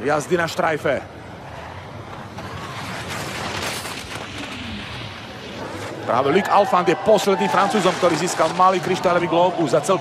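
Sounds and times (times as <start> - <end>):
skis scraping over icy snow: 2.4 - 9.4.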